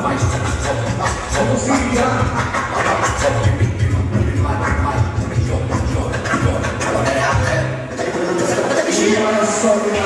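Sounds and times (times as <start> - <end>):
heavy pulsing bass beat: 0.0 - 9.2
live rap music through pa: 0.0 - 10.0.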